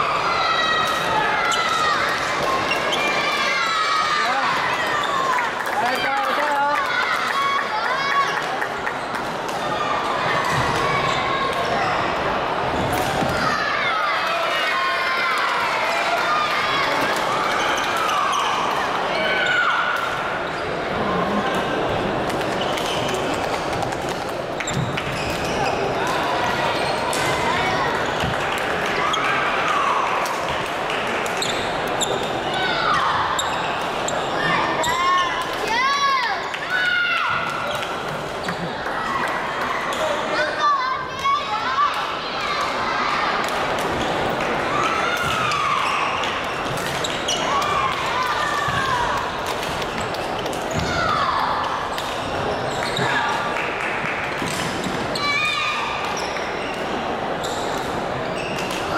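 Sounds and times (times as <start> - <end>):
echoing babble of voices: 0.0 - 58.9.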